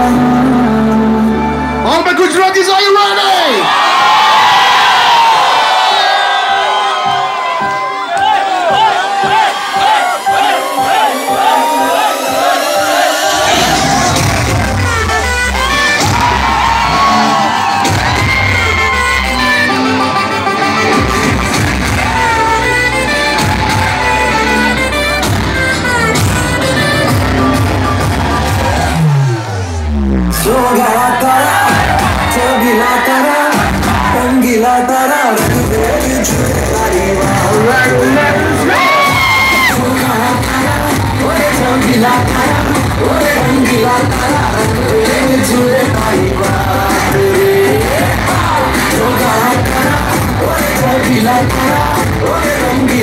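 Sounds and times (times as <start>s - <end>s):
crowd cheering and whooping: 3.4s - 35.0s, 37.0s - 52.2s
dance track with kick drum: 6.4s - 19.5s, 31.5s - 32.6s, 33.5s - 34.4s, 35.4s - 53.0s.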